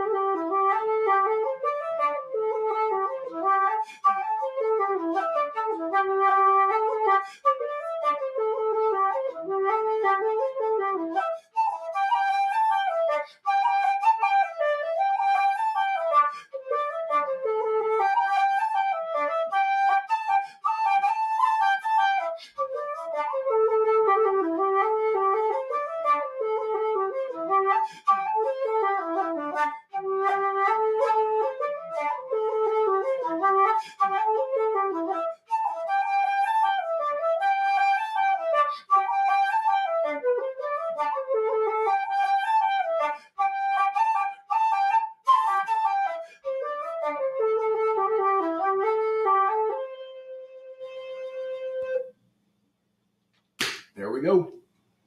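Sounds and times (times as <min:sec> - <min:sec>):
wooden flute playing a reel: 0:00.0 - 0:52.1.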